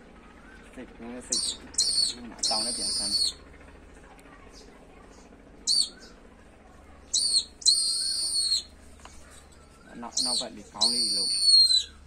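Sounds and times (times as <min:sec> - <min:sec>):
falcon calling in shrill cries: 0:01.3 - 0:03.4, 0:05.7 - 0:06.1, 0:07.1 - 0:08.7, 0:10.1 - 0:12.0.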